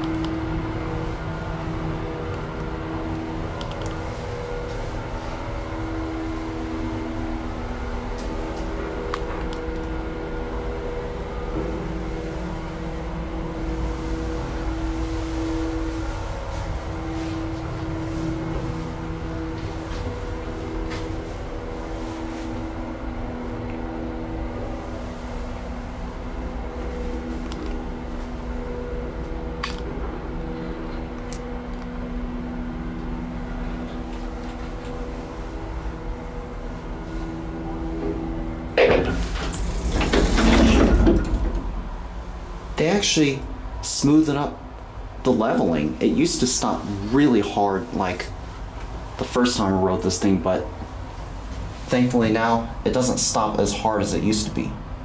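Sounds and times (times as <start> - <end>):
elevator motor hum: 0.0 - 55.0
elevator travel rumble: 0.0 - 55.0
ventilation fan running: 0.0 - 55.0.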